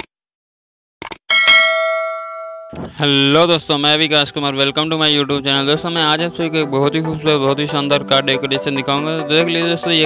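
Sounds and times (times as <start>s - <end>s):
notification bell ding: 1.3s - 2.8s.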